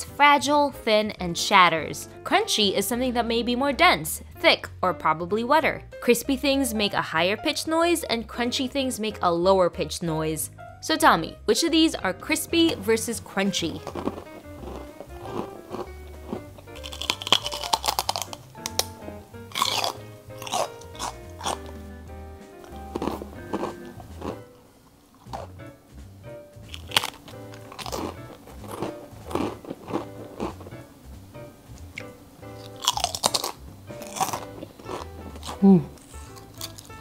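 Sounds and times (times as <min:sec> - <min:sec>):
background music: 0:00.0 - 0:37.0
crisps crunching: 0:13.7 - 0:21.8, 0:22.6 - 0:25.6, 0:26.6 - 0:30.8, 0:32.6 - 0:37.0.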